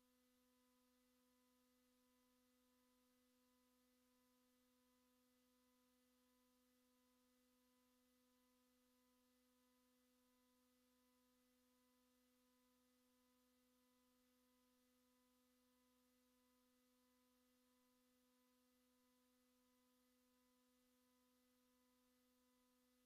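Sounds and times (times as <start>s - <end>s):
faint steady hum: 0.0s - 23.0s.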